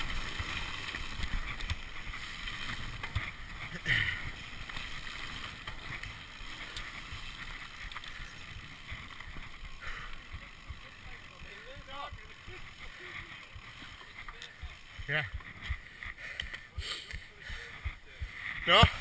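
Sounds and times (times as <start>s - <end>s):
bike rattling: 0.0s - 19.0s
bike tyres rolling on gravel: 0.0s - 19.0s.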